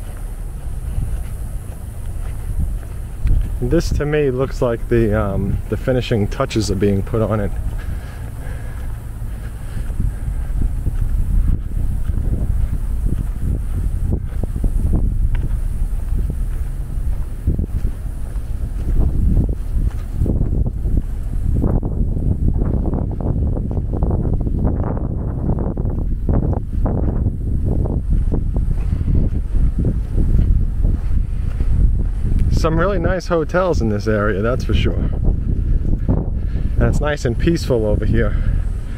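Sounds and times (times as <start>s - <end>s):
wind buffeting microphone: 0.0s - 38.9s.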